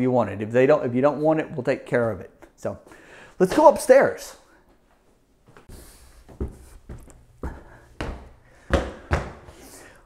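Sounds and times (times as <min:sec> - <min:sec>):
footsteps climbing stairs: 0:05.5 - 0:09.7.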